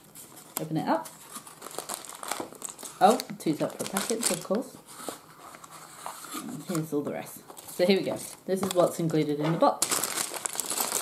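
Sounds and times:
plastic bags crinkling: 0.0 - 4.8, 7.5 - 11.0.

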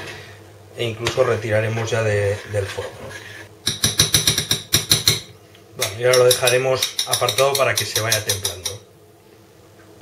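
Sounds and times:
metal spoon clinking against saucepan: 6.1 - 8.8.

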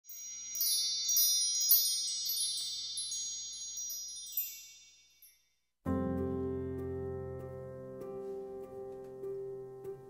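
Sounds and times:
high ringing chime tones: 0.1 - 5.6.

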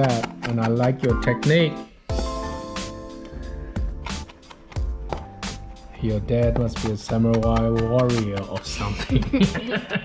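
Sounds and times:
background music: 0.0 - 10.0
knife chopping on wooden board: 6.4 - 9.3.

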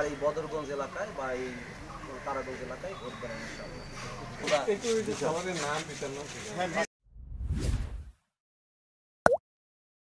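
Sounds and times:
deep whoosh: 7.1 - 8.2.

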